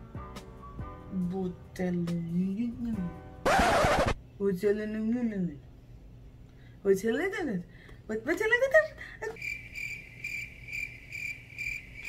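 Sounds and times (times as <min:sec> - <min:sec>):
cricket chirping: 0:09.4 - 0:12.0.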